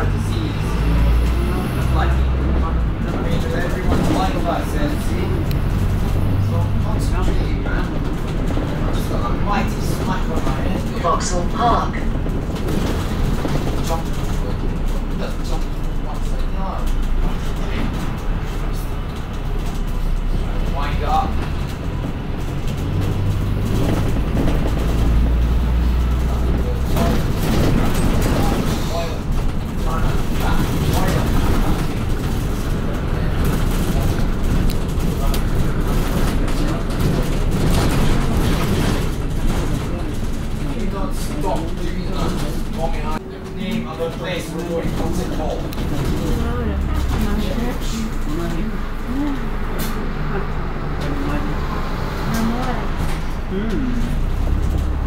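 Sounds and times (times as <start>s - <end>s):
bus engine and road rumble: 0.0s - 55.0s
passengers' voices: 0.0s - 55.0s.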